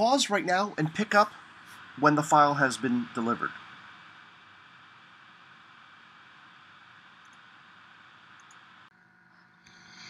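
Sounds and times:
faint recording hiss: 0.0 - 8.9.

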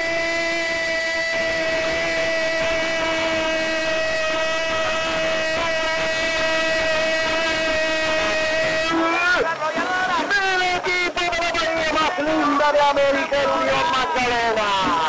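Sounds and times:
commentator shouting goal cry: 5.4 - 15.0.

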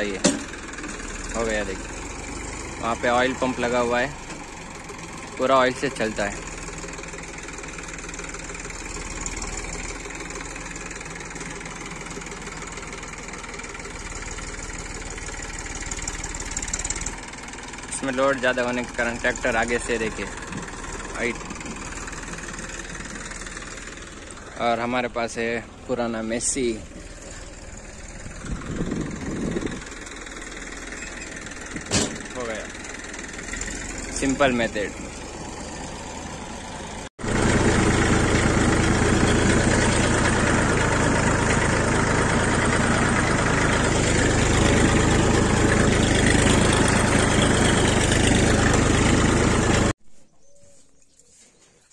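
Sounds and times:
tractor diesel engine running: 0.0 - 50.0.

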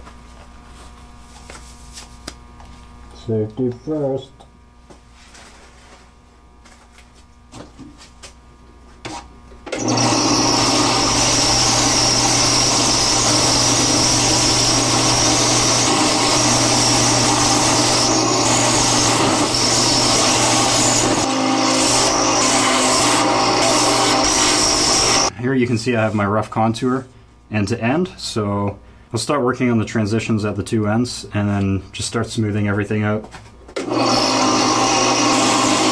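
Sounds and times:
belt sander running: 9.7 - 25.3, 33.8 - 35.9
wood sanding on belt: 10.2 - 25.3.

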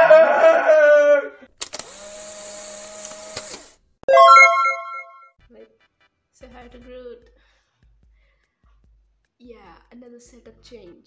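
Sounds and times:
click: 3.0 - 3.6
bright chime-like intro sting: 4.1 - 5.3.

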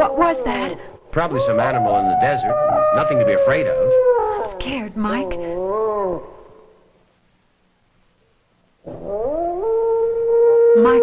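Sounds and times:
eerie howling animal cry: 0.0 - 6.9, 8.8 - 11.0.

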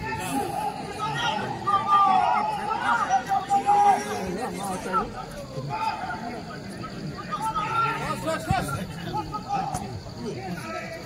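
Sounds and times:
spectators talking and calling out: 0.0 - 11.0.

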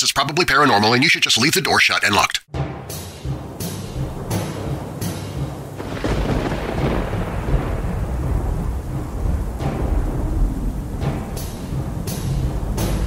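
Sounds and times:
dark background music: 2.5 - 13.0
thunder crash and rumble: 4.0 - 13.0
rain: 5.6 - 13.0.

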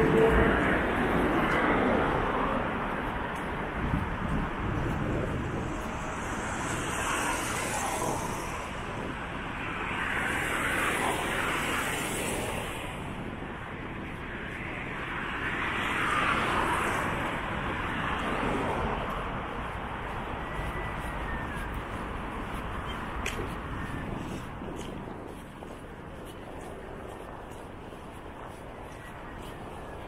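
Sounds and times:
cars passing: 0.0 - 30.0
distant traffic hum: 0.0 - 30.0.

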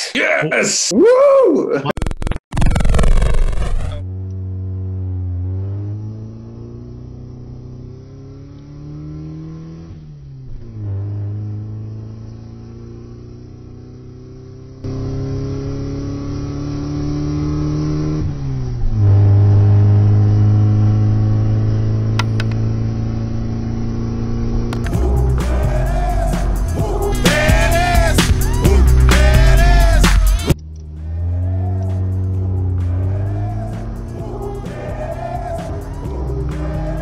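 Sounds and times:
car engine accelerating hard: 2.6 - 37.0.

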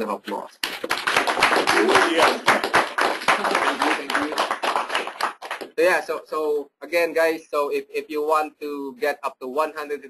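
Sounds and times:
audience applauding: 0.6 - 5.8.

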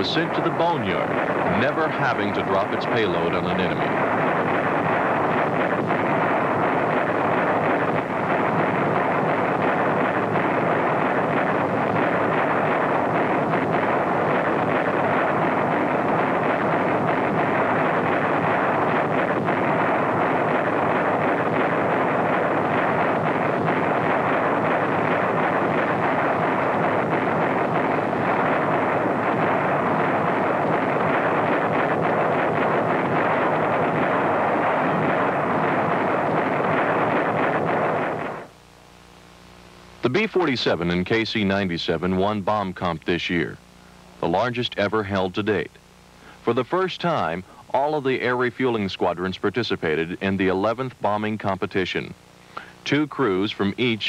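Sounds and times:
loud rushing roar: 0.0 - 38.5.

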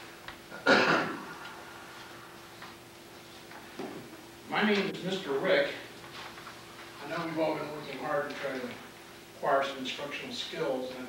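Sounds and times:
projector fan humming: 0.0 - 11.0.

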